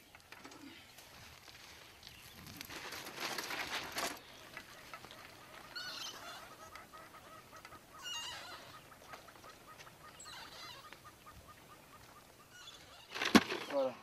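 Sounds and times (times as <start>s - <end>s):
faint bird calls: 4.2s - 13.9s.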